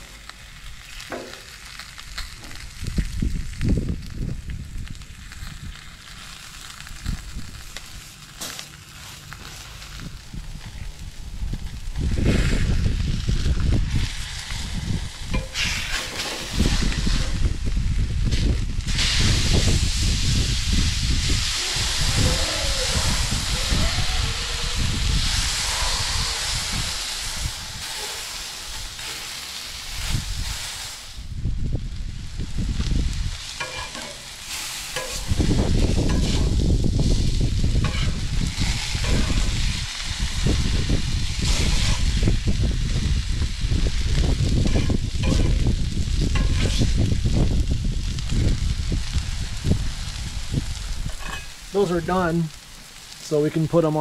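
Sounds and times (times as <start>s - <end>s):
food sizzling on griddle: 0.0s - 54.0s
metal spatula scraping: 15.4s - 17.2s, 33.6s - 34.3s, 34.9s - 35.4s, 36.1s - 36.5s, 37.8s - 39.5s, 41.4s - 42.1s, 44.6s - 45.6s, 46.4s - 46.9s, 51.1s - 51.6s.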